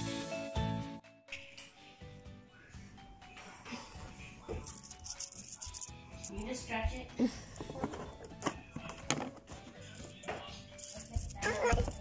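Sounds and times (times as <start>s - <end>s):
background music: 0.0s - 12.0s
coins jingling: 4.6s - 6.5s, 9.9s - 12.0s.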